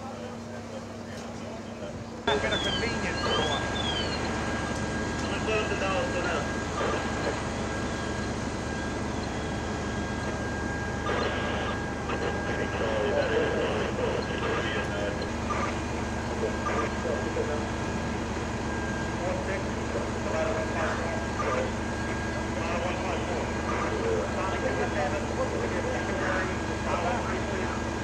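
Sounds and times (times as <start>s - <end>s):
constant high whine: 0.0s - 28.0s
fire truck engines droning: 0.0s - 28.0s
voices: 0.0s - 28.0s
siren wail: 2.3s - 27.1s.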